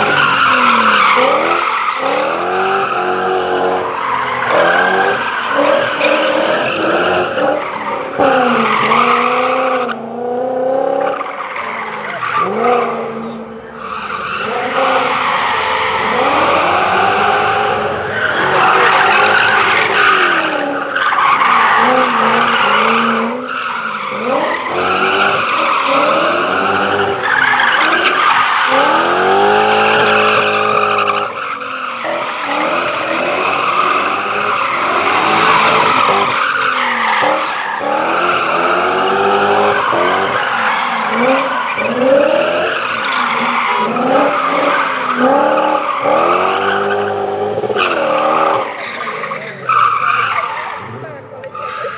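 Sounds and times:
tyres squealing: 0.0s - 9.8s, 11.2s - 51.9s
rally car engine revving: 0.0s - 51.9s.

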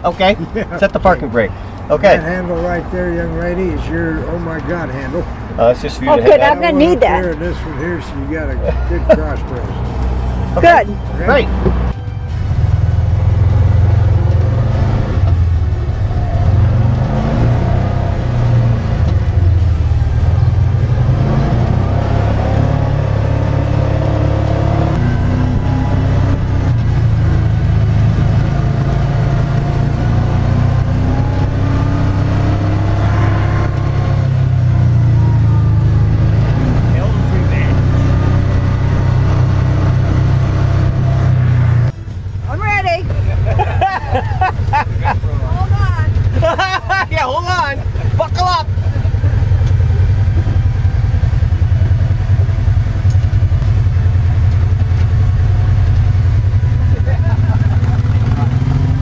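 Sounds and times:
utility vehicle engine rumbling: 0.0s - 59.0s.

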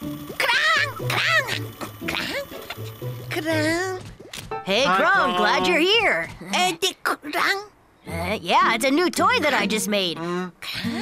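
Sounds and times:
squeaky high-pitched creature calls: 0.4s - 2.5s.

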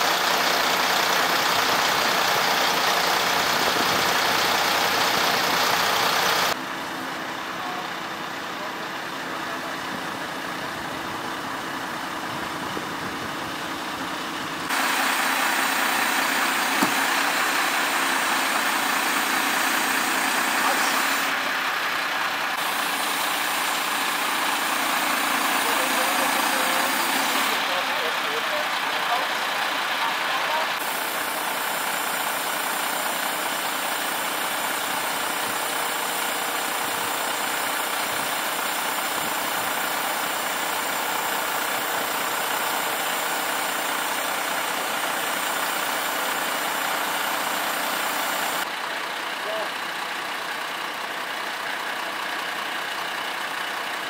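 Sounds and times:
diesel engine running: 0.0s - 54.0s.

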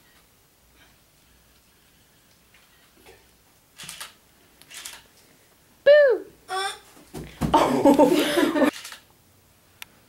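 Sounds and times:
camera shutter clack: 3.8s - 5.1s, 8.7s - 9.1s.

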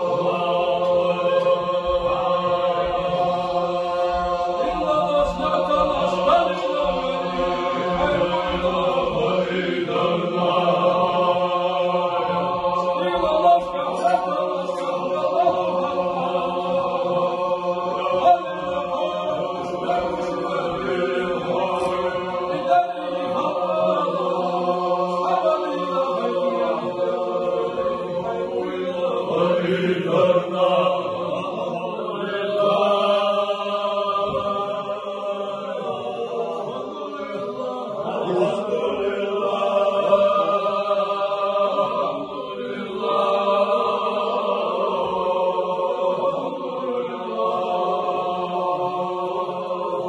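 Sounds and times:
men chanting in unison: 0.0s - 50.0s.

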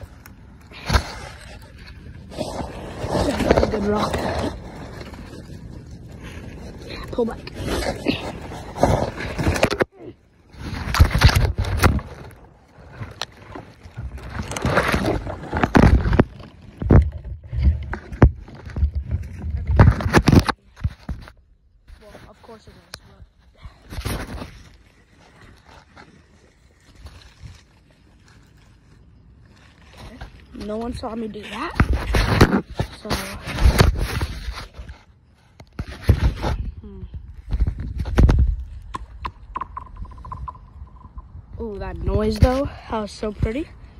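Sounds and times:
clothing rubbing against microphone: 17.5s - 36.8s.

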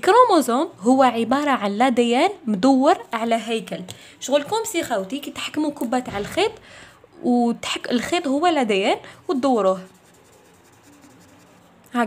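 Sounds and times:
pen scribbling on paper: 9.3s - 11.8s.

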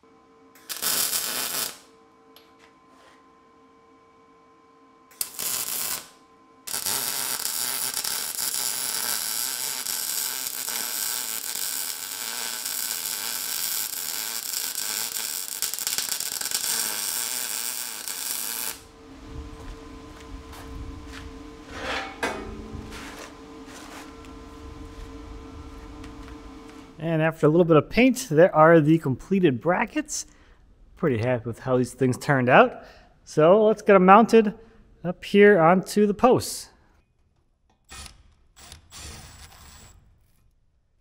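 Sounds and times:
steady hum: 0.0s - 36.8s
welding arc crackling: 0.6s - 1.9s, 5.1s - 19.0s, 37.9s - 40.4s.

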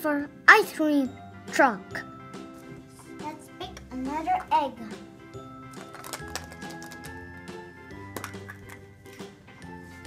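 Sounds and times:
instrumental background music: 0.0s - 10.0s
plastic egg clicking: 5.7s - 7.2s, 8.1s - 8.9s.

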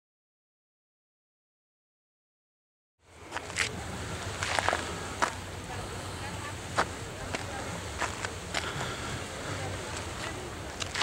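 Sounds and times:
faint distant voices: 3.1s - 11.0s.

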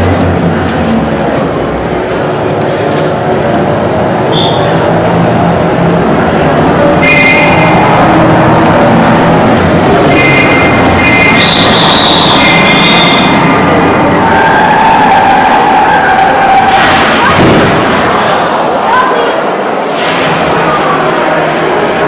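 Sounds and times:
car engine over speakers: 0.0s - 22.0s
screeching tyres: 0.0s - 22.0s
crash: 16.6s - 18.8s.

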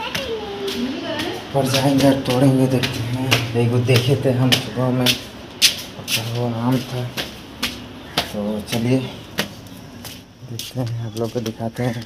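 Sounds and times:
footsteps on concrete stairs: 0.0s - 12.0s
man speaking indistinctly: 1.5s - 7.4s, 8.1s - 9.5s, 10.4s - 12.0s.

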